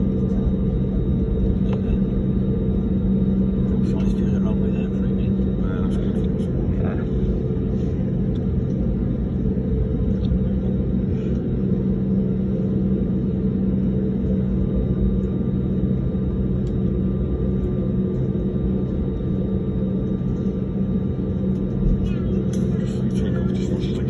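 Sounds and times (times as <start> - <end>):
airliner cabin engine drone: 0.0 - 24.0.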